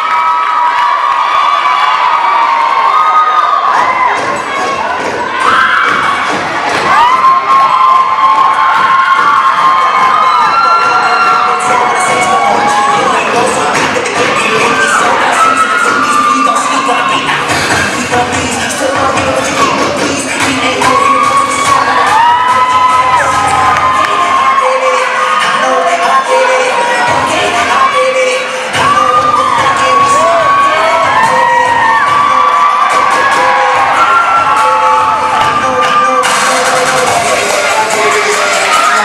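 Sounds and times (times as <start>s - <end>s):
crowd screaming and cheering: 0.0s - 39.0s
dance music: 0.0s - 39.0s.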